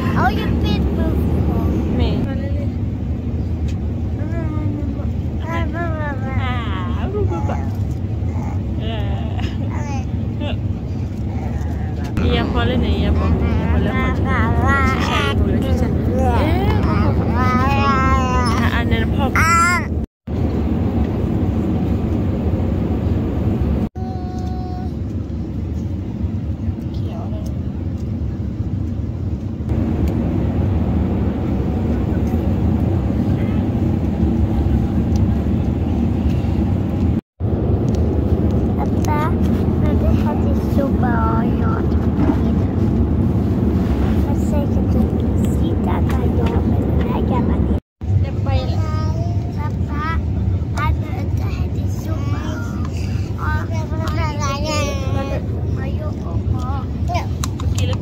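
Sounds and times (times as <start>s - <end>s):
airliner cabin rumble: 0.0s - 58.0s.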